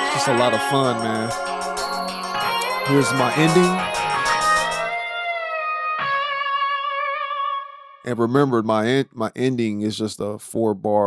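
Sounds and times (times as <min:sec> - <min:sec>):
synthesizer lead note: 0:00.0 - 0:05.7.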